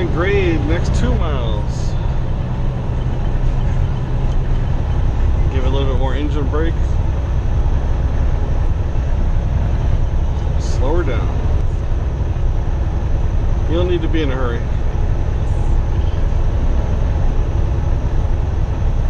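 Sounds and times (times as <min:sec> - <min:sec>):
diesel engine brake drone: 0:00.0 - 0:19.0.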